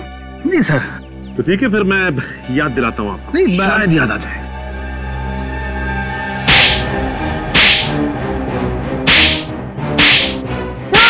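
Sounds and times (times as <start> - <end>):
tense background music: 0.0 - 11.0
sharp whooshes: 6.5 - 8.1, 9.0 - 10.4.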